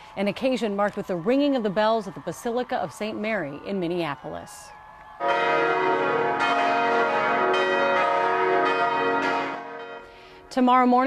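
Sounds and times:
church bells ringing: 5.2s - 10.5s.

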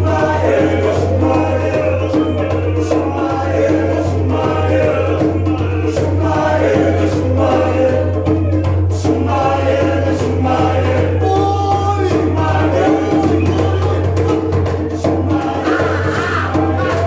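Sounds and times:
male vocal group singing: 0.0s - 17.0s.

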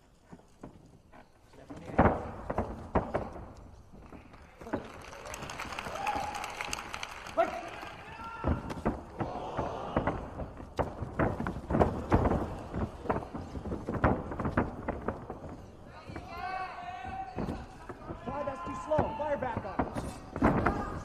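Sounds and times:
feet thudding on ring canvas: 0.2s - 4.9s, 8.2s - 21.0s
people shouting: 5.8s - 6.7s, 7.4s - 10.6s, 18.0s - 19.6s.

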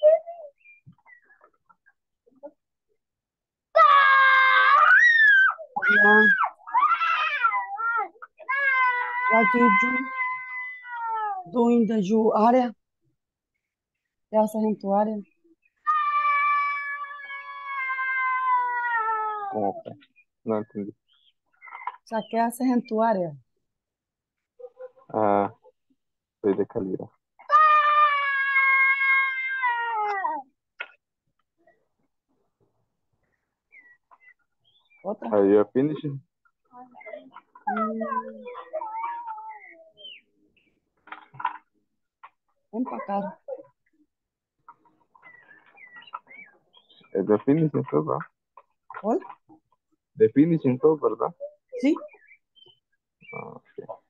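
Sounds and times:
high-pitched vocal call: 36.9s - 40.3s.

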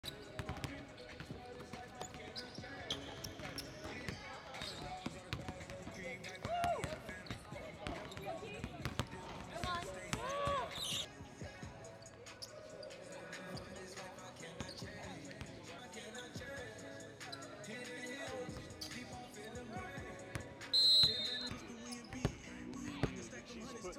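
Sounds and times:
basketballs bouncing on gym floor: 0.4s - 11.1s.

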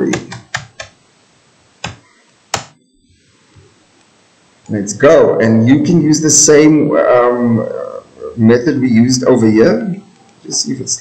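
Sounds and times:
computer mouse clicks: 0.2s - 1.0s.

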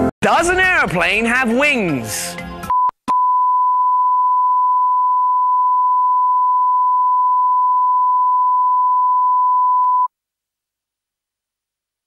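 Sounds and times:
steady test tone beep: 2.7s - 10.1s.

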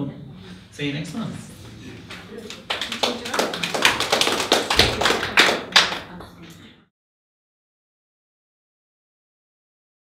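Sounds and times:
small audience applauding: 2.3s - 6.4s.

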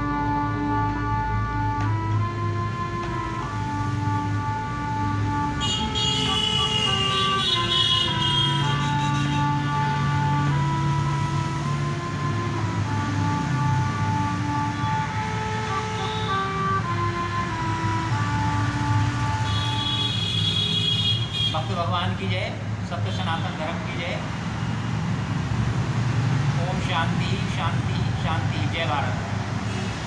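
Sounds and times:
harmonium melody: 0.0s - 22.3s.

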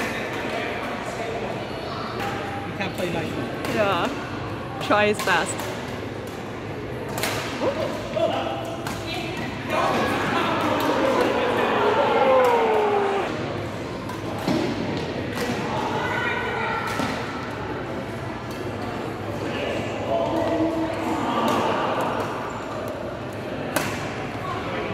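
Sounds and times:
voices talking and calling out: 0.0s - 14.5s
rackets hitting shuttlecock: 7.1s - 9.6s, 23.7s - 24.2s.

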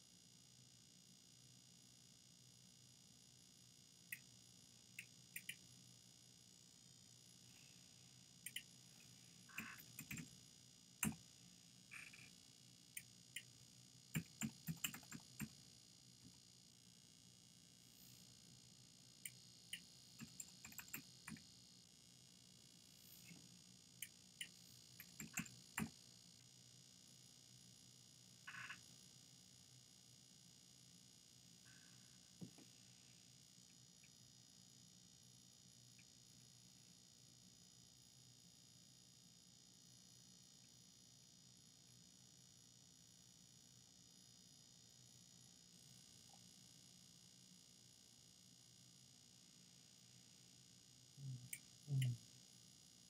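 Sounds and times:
faint clicks: 8.4s - 8.7s
low croak-like sound: 8.5s - 10.2s, 11.8s - 12.4s, 28.4s - 28.9s, 51.2s - 52.2s.

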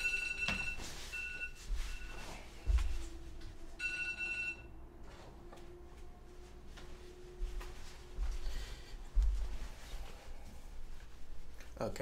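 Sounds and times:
phone ringing: 3.8s - 4.8s.

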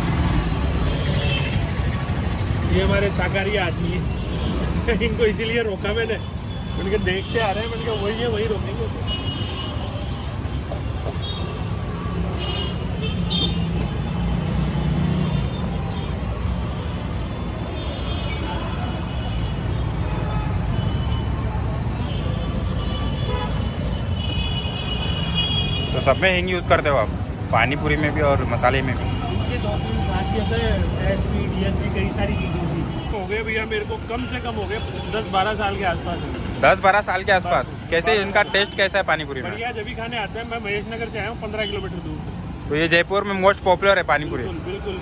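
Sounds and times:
street traffic rumble: 0.0s - 45.0s.

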